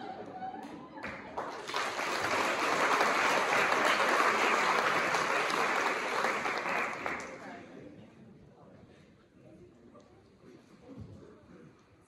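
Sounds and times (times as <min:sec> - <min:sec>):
audience applauding: 0:01.0 - 0:07.5.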